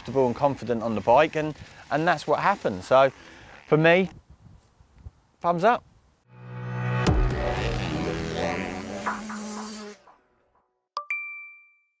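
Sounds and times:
outro music: 6.3s - 10.8s
bright chime dings: 11.0s - 12.0s.

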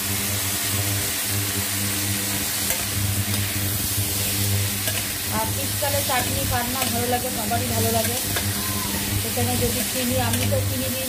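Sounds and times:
food sizzling in hot oil: 0.0s - 11.0s
metal spatula scraping: 2.6s - 10.9s.

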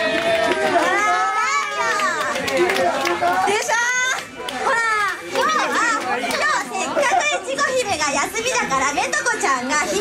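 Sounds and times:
women talking into microphones: 4.8s - 10.0s.

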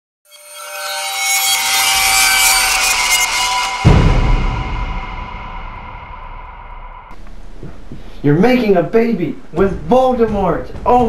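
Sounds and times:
hissy riser with high tones: 0.3s - 7.6s
deep boom: 3.6s - 8.0s.

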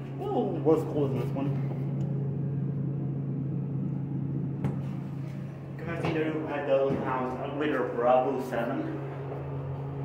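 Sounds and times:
elevator car hum: 0.0s - 10.0s.

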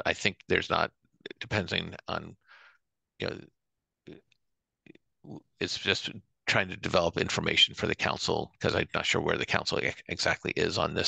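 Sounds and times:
man talking on video call: 0.0s - 2.5s, 3.2s - 11.0s.

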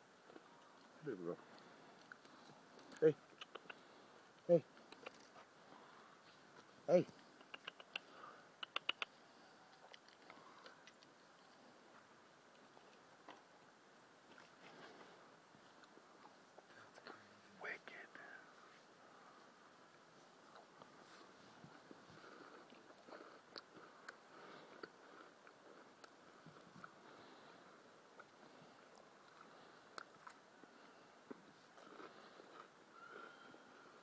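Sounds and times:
person whispering call: 16.7s - 18.6s.

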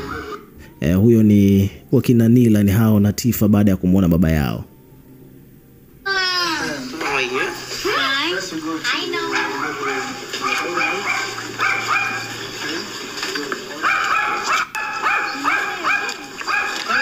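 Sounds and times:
small dog yapping: 9.2s - 12.4s, 13.8s - 17.0s.

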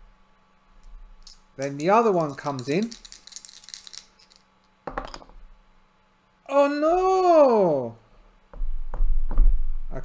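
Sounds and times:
dice rattling in hand: 1.2s - 5.2s
dice landing in tray: 1.2s - 5.3s.

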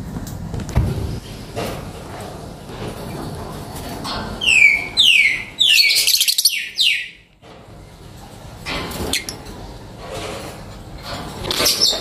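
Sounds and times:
lovebird shrill chirps: 4.5s - 7.1s.

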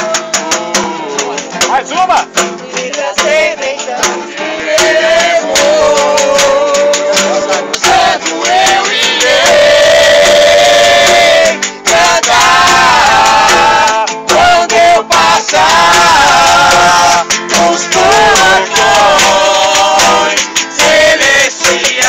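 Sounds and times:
acoustic guitar: 0.0s - 22.0s
group singing a hymn: 2.6s - 22.0s.

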